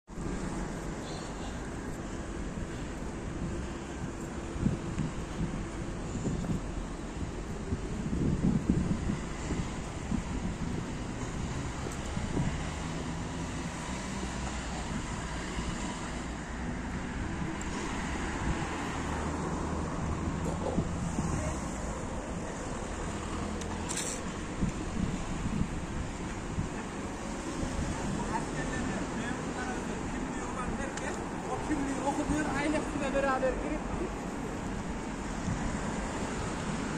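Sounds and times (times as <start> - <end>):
wind buffeting microphone: 1.6 - 28.4, 33.8 - 36.9.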